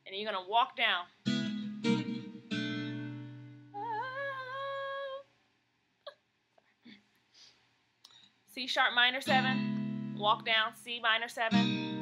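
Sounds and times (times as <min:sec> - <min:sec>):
acoustic guitar chords: 0:01.3 - 0:04.4, 0:09.2 - 0:10.8, 0:11.5 - 0:12.0
woman humming: 0:03.8 - 0:05.3.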